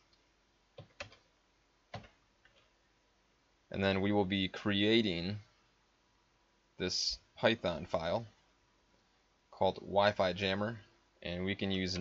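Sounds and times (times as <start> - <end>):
computer keyboard keystrokes: 0.8 - 1.3, 1.9 - 2.6.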